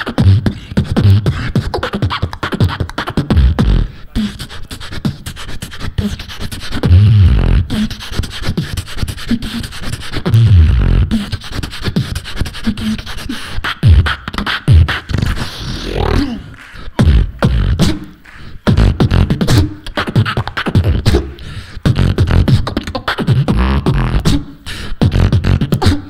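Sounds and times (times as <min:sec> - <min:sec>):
beatboxing through microphone: 0:00.0 - 0:26.0
vocal pitch slides: 0:00.0 - 0:26.0.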